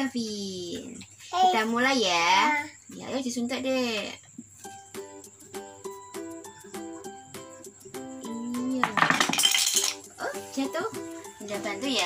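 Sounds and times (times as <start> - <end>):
light plinking music: 1.8 - 12.0
wooden puzzle pieces clattering: 9.0 - 10.0.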